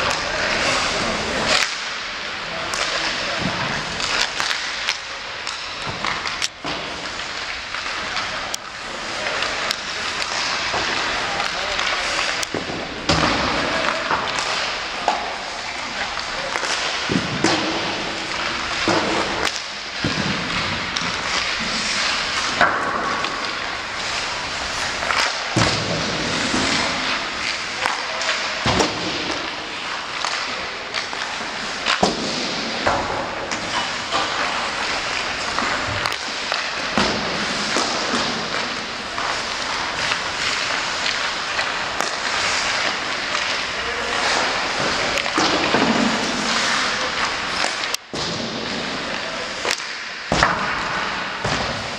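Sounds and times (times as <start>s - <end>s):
pucks hitting boards and glass: 0.0s - 51.9s
sticks striking pucks: 0.0s - 51.9s
skates hissing on ice: 0.4s - 48.0s.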